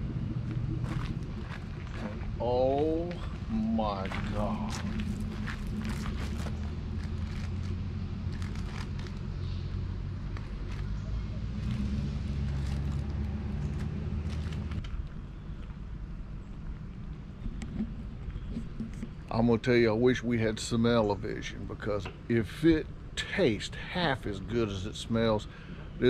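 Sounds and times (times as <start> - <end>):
engine idling low hum: 0.0 - 26.0.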